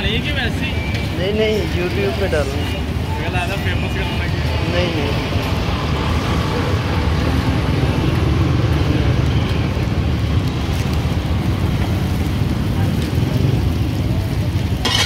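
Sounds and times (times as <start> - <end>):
food sizzling in oil: 14.8 - 15.0.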